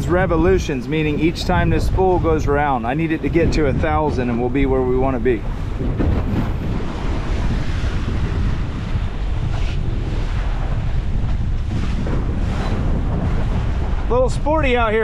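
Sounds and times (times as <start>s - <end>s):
waves splashing against hull: 0.0s - 15.0s
wind buffeting microphone: 0.0s - 15.0s.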